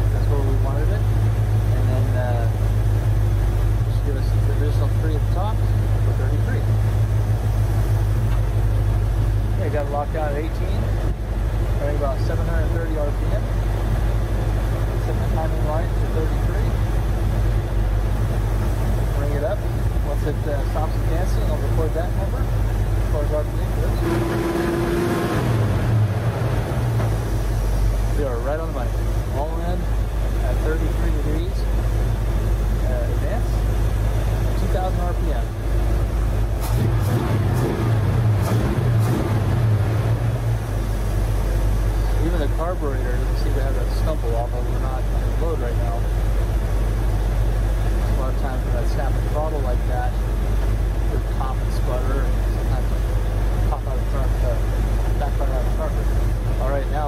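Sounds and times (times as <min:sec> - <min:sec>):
car engine idling: 0:00.0 - 0:57.0.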